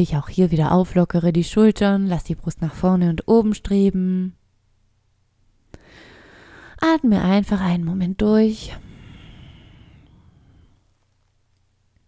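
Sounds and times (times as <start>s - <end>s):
person breathing out slowly: 5.8s - 6.8s, 8.6s - 11.0s.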